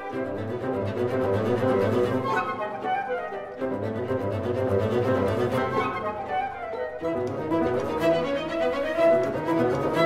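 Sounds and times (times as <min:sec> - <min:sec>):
flute and violin melody: 0:00.0 - 0:10.0.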